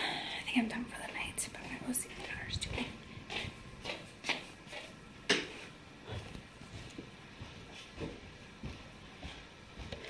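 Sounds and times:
woman whispering: 0.1s - 3.0s.

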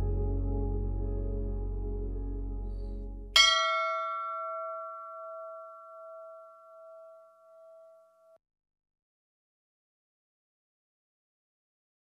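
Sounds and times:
metal temple bell ringing: 3.4s - 8.3s.

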